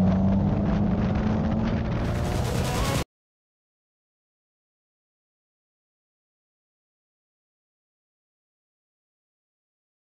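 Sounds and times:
car engine running under load: 0.0 - 3.0
road noise: 0.0 - 3.0.

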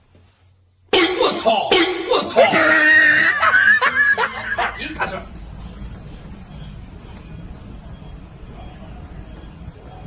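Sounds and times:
person laughing high-pitched: 1.0 - 5.2.

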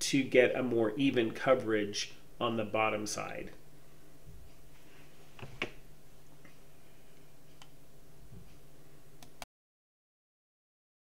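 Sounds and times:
low steady hum: 0.0 - 9.4.

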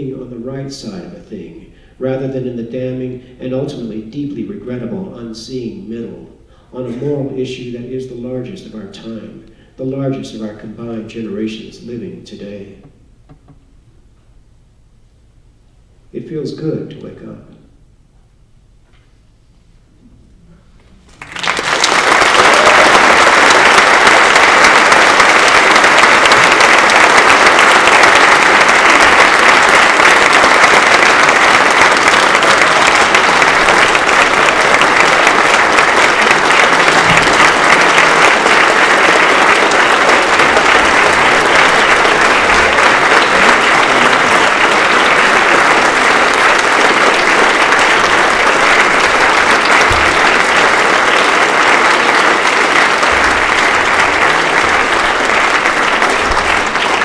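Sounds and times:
audience applause: 21.1 - 57.0.

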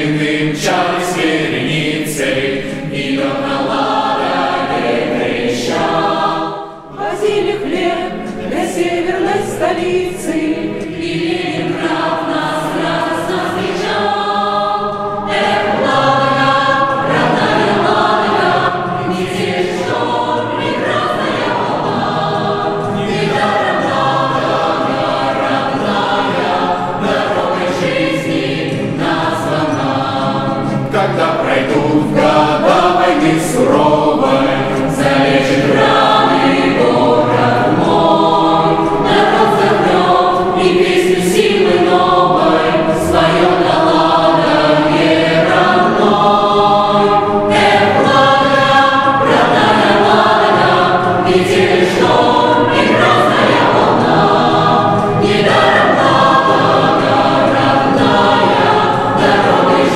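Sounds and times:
mixed choir singing a cappella: 0.0 - 59.9.

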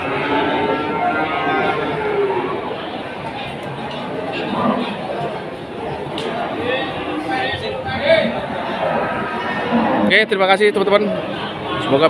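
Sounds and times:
cow mooing: 0.0 - 2.8, 8.6 - 10.3.

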